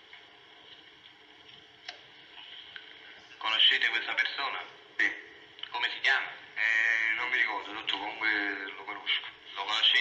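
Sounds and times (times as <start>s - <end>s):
person talking on old recording: 3.3s - 10.0s.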